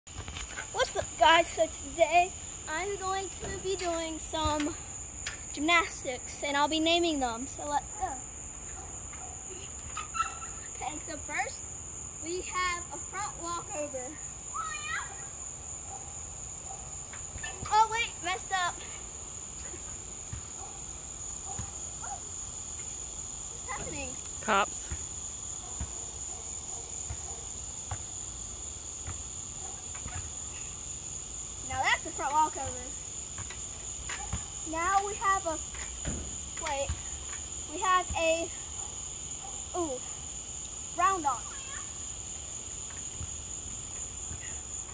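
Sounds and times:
crickets chirping: 0.1s - 44.9s.

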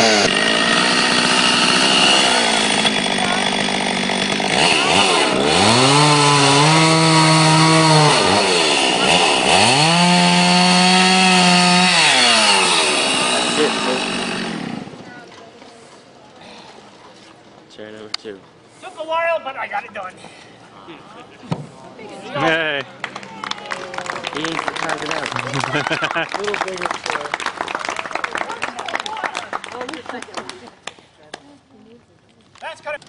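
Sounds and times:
chainsaw cutting wooden log: 0.0s - 15.1s.

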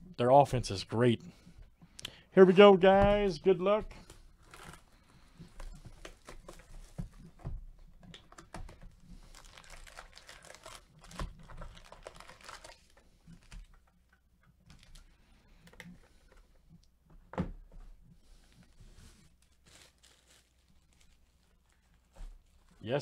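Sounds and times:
plastic wrap crinkling and tearing: 4.0s - 7.0s, 8.2s - 13.9s, 14.7s - 15.1s, 19.0s - 23.0s.

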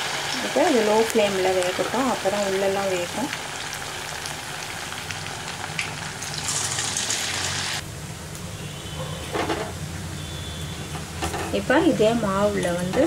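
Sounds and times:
food sizzling in hot oil: 0.0s - 7.8s.

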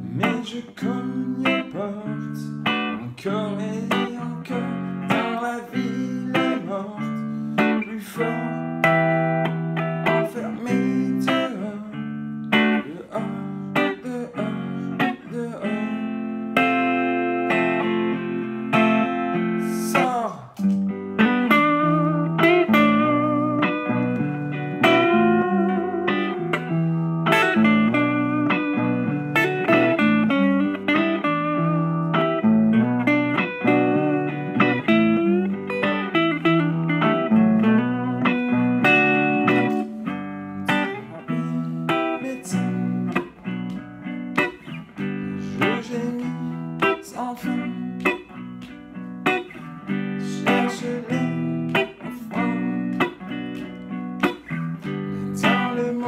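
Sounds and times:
electric guitar playing: 0.0s - 56.0s.

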